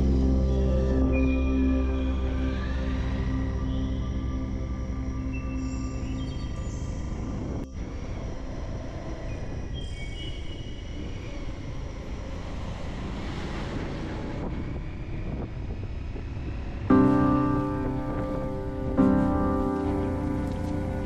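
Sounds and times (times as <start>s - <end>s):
faint background music: 0.0s - 21.0s
wind noise: 5.9s - 21.0s
truck passing: 12.0s - 21.0s
motorcycle engine rumble: 12.2s - 21.0s.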